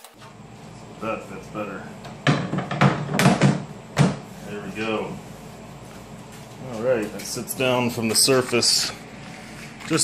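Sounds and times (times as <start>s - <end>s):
plate knocking on wooden table: 2.2s - 4.2s.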